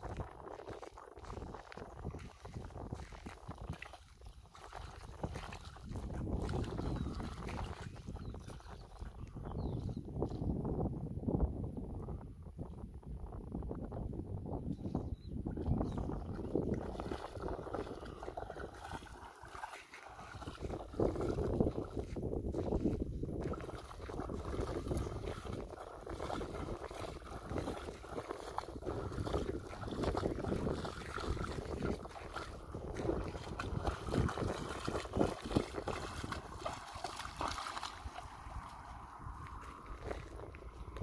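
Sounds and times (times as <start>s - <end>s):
dog wading splashing water: 0.0s - 9.3s, 16.0s - 41.0s
wind on microphone: 0.0s - 41.0s.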